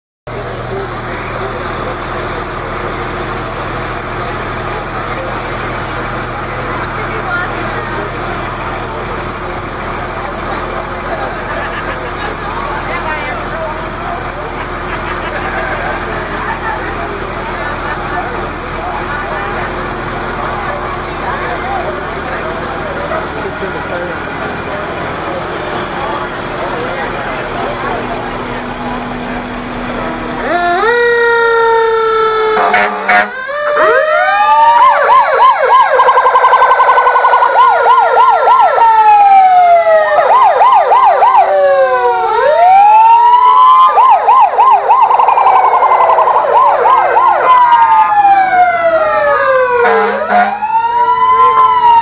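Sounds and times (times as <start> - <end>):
crowd chatter: 0.3 - 52.0
fire engines droning: 0.3 - 52.0.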